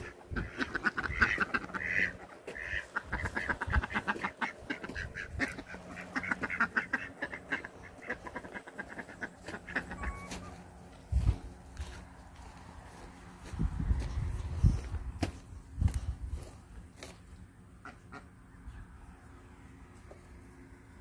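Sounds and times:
long poultry calls: 0.0 - 13.1
poultry clucking: 0.0 - 19.1.

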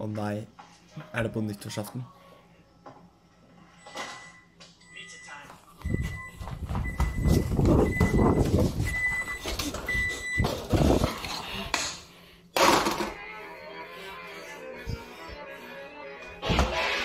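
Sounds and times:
oven timer beeps: 3.7 - 10.5.

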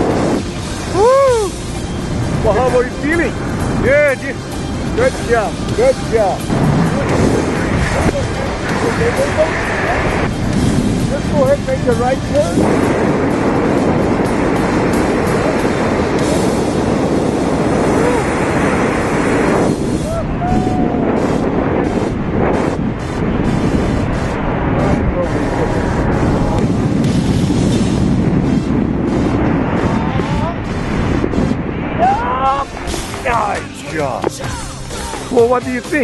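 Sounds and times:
wind rushing over microphone: 0.0 - 36.0.

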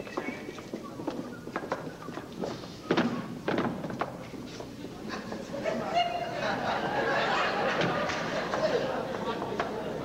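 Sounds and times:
footsteps on stage floor: 0.0 - 5.0.

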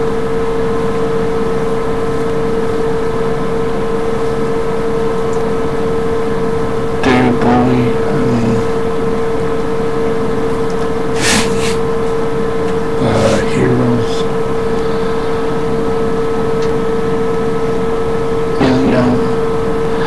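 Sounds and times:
mid-pitched hum: 6.4 - 9.2, 11.1 - 11.9, 12.8 - 20.0
short burst of voice: 11.2 - 11.8, 13.0 - 14.2
steady hiss: 11.2 - 11.8.

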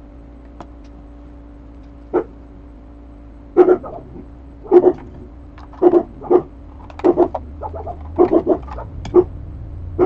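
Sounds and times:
dog yapping: 2.1 - 2.4, 3.6 - 5.2, 5.8 - 9.3.

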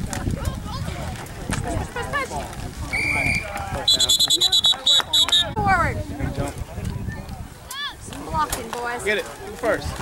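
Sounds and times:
referee's whistle blasts: 2.9 - 5.6.

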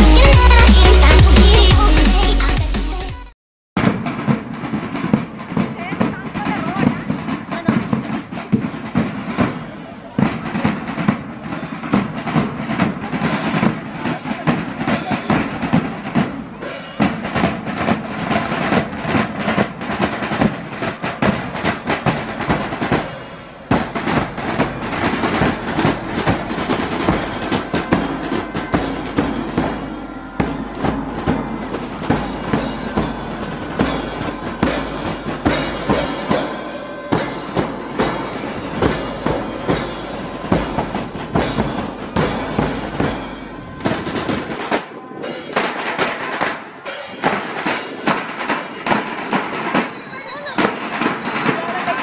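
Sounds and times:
snare drums marching beat: 0.0 - 2.8, 3.8 - 52.0.

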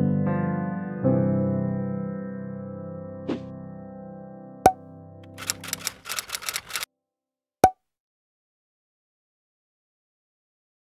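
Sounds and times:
run of short clicks: 5.2 - 6.9.

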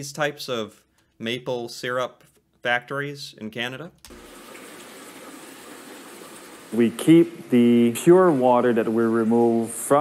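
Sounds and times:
water pouring into steel tank: 4.1 - 7.2.

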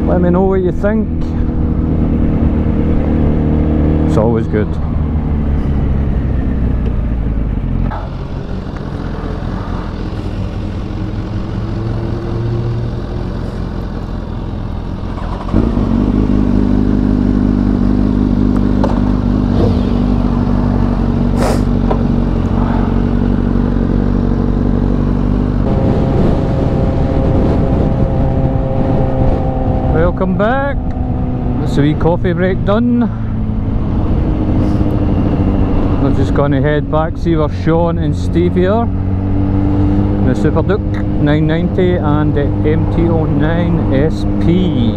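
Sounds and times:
motorcycle running at steady speed: 0.0 - 44.9
motorcycle engine idling: 12.8 - 24.9.

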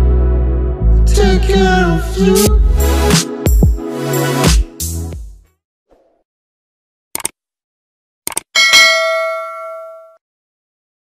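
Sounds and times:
notification bell ding: 8.6 - 10.2.

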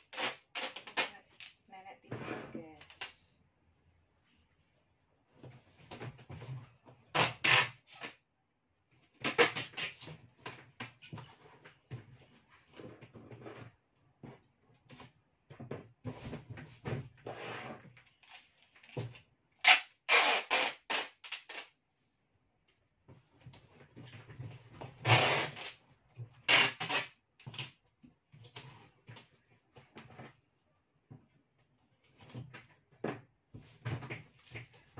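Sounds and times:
packing tape pulled off roll: 0.0 - 1.6, 7.1 - 8.2, 9.2 - 10.6, 18.2 - 21.8, 25.0 - 25.8, 26.4 - 27.8
cardboard scraping and handling: 9.6 - 15.1.

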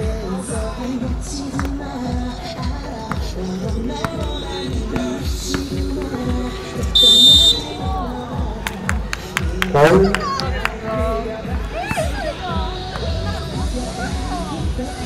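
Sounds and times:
background music with steady beat: 0.0 - 15.0
loud electronic buzzer: 7.0 - 7.6.

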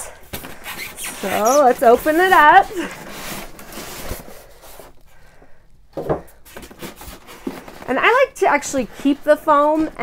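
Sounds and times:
polystyrene foam scraping: 0.5 - 5.0, 6.5 - 10.0.

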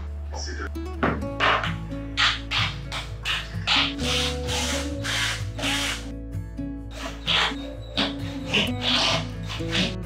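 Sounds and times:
cordless drill driving screws: 4.0 - 6.1.

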